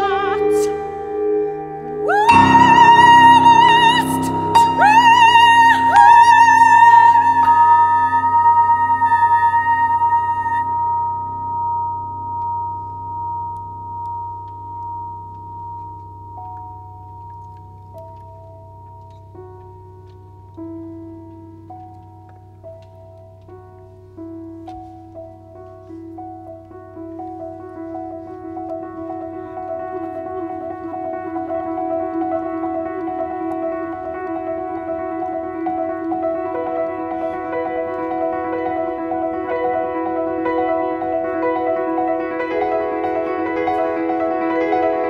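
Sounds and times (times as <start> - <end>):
soprano singing high note: 0.0 - 12.2
chamber music with piano: 0.0 - 45.0.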